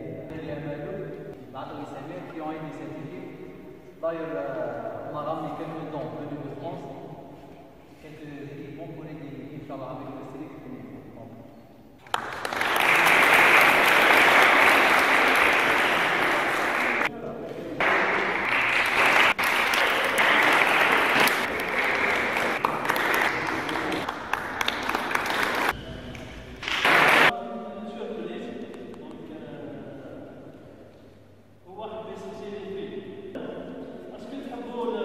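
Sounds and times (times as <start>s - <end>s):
audience applauding: 12.0s - 17.1s, 17.8s - 27.3s.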